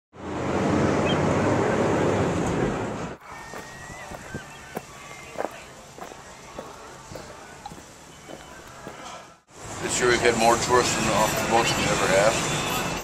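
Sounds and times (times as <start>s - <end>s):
street ambience: 0.2s - 13.0s
footsteps: 3.2s - 9.4s.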